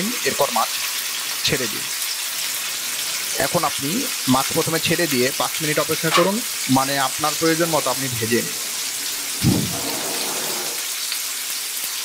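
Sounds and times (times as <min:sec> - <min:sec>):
fish frying in hot oil: 0:00.0 - 0:12.0.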